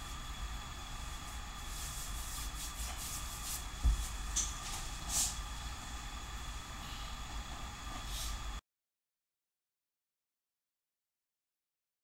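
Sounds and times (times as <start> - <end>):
faint high whine: 0.0 - 8.6.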